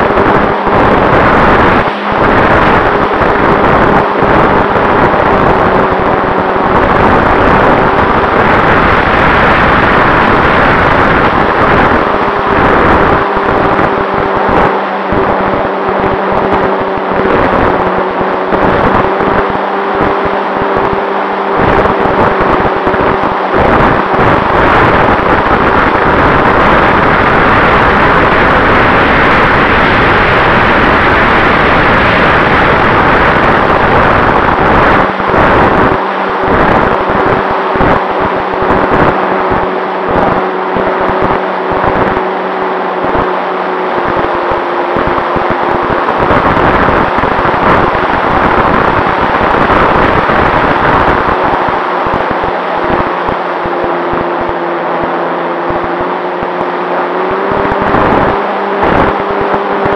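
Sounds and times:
model airplane motor hum: 0.0s - 59.9s
wind rush on microphone: 0.0s - 59.9s.

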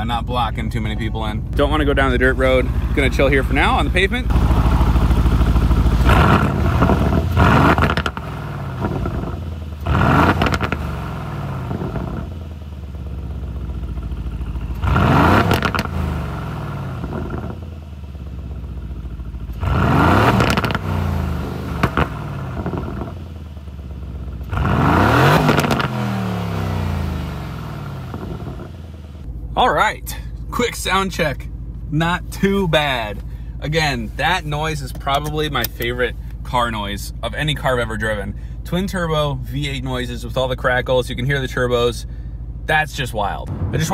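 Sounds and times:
car engine idling and revving: 0.0s - 43.9s
exhaust crackles and pops: 0.2s - 12.3s, 13.8s - 17.6s, 19.3s - 23.2s, 24.4s - 27.0s, 27.6s - 29.3s, 32.3s - 36.6s.

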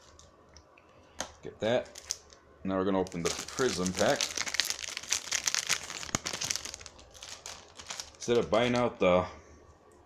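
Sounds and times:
card pack wrapper crinkling: 1.8s - 2.4s, 3.0s - 9.0s.

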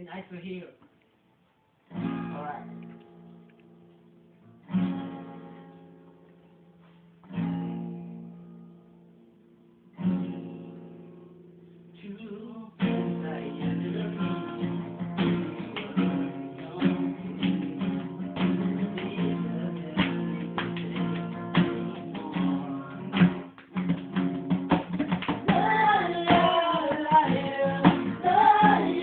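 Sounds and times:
acoustic guitar strumming: 1.8s - 29.0s
people singing: 12.0s - 23.5s, 25.3s - 29.0s.

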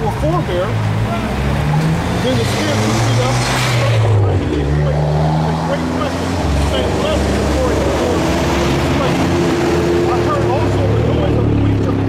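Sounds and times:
low engine hum of traffic: 0.0s - 12.0s
car passing close by: 0.8s - 11.9s.

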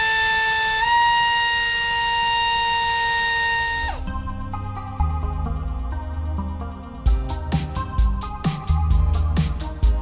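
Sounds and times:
drone motor high-pitched whine: 0.0s - 4.4s.

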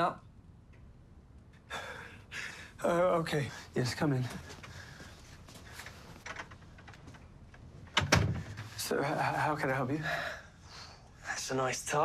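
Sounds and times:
man breathing: 1.6s - 2.8s, 4.4s - 6.3s, 10.0s - 11.2s.

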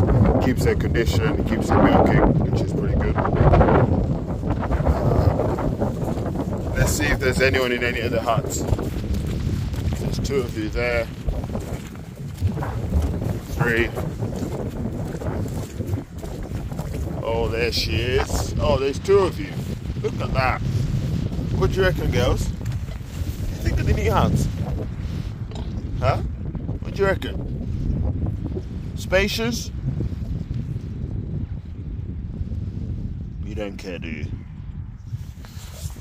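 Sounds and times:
wind buffeting microphone: 0.0s - 36.0s
footsteps squelching through mud: 4.8s - 18.2s.

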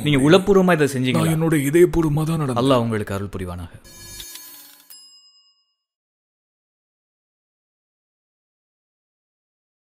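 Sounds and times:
bell-like chime: 3.9s - 6.0s.

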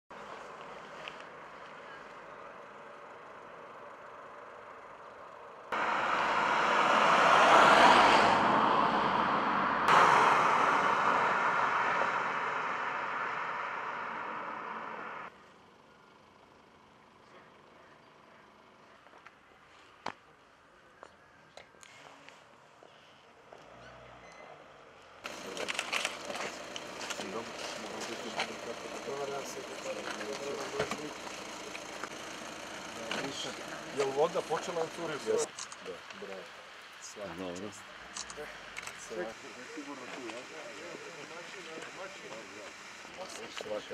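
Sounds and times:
car engine idling: 0.3s - 7.3s, 8.4s - 15.3s, 25.2s - 43.9s
car driving past: 5.7s - 15.3s
men's voices greeting: 25.3s - 43.9s.

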